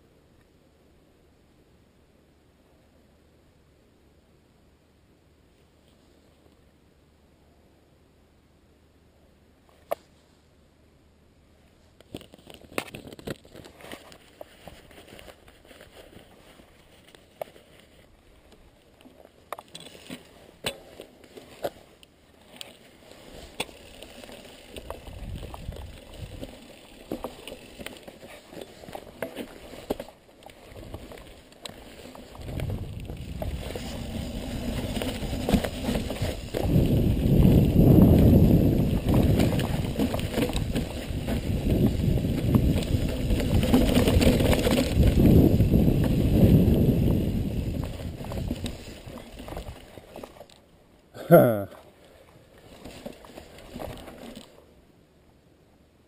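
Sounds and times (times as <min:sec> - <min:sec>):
tyre and trail noise: 0:11.6 - 0:55.2
bike clicks and rattles: 0:12.0 - 0:50.7, 0:52.6 - 0:54.6
wind rushing on microphone: 0:32.4 - 0:35.4, 0:36.2 - 0:49.8.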